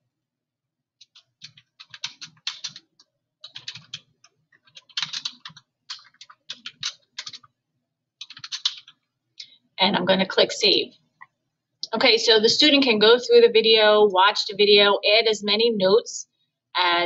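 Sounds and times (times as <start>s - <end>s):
typing on a keyboard: 1.0s - 7.5s, 8.2s - 9.1s.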